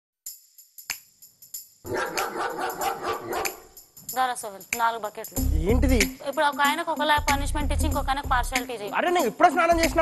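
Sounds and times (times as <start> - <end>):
light music with tambourine jingles: 0.2 - 10.0
dog barking: 1.9 - 3.7.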